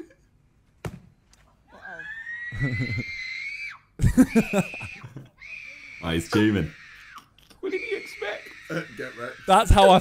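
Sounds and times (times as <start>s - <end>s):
high-pitched scream: 1.7s - 10.0s
loud laughter: 2.5s - 3.3s, 4.0s - 5.6s.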